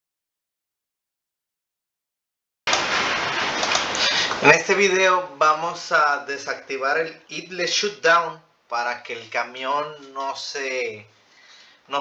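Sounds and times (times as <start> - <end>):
steady loud hiss: 2.7 - 12.0.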